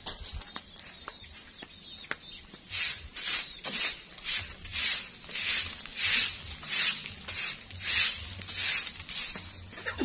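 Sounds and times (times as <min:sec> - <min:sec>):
broom sweeping dirt: 0:02.6 - 0:10.0.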